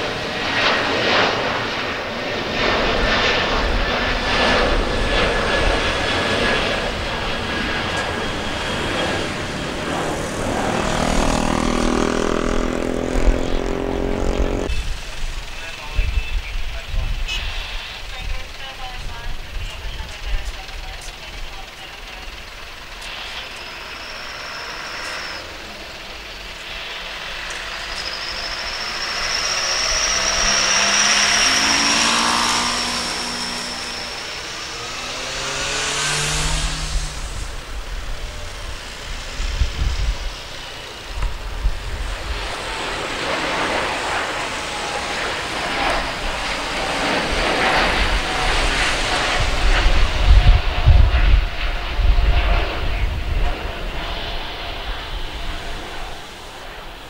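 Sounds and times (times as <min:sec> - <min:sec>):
deep rough jet rumble: 0:00.0 - 0:57.0
jet engine whine: 0:00.0 - 0:57.0.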